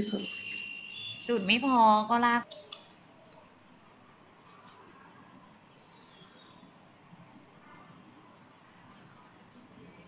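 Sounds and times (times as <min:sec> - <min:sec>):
woman speaking: 0:01.3 - 0:02.5.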